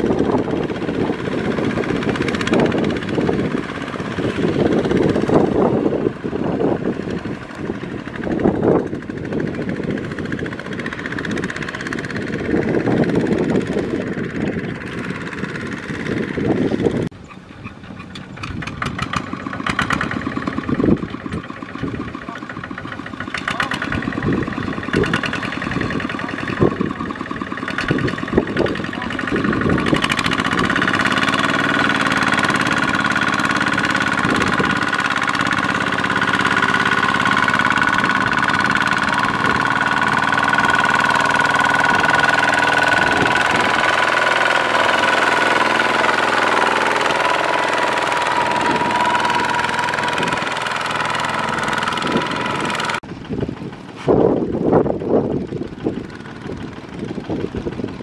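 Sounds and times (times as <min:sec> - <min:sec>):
diesel engine under load: 0:00.0 - 0:58.0
engine knocking: 0:00.0 - 0:58.0
high whine: 0:37.7 - 0:53.0.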